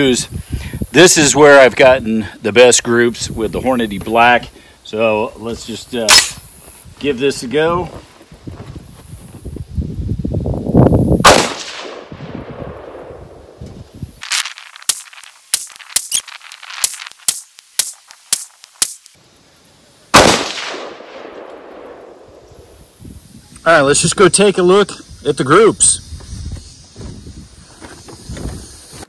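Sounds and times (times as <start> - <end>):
rifle shots: 11.2 - 13.2, 20.1 - 22.4.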